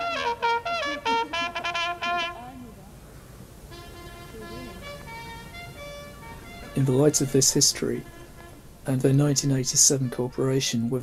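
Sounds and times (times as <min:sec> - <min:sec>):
bugle playing held notes: 0:00.0 - 0:02.7, 0:03.7 - 0:10.6.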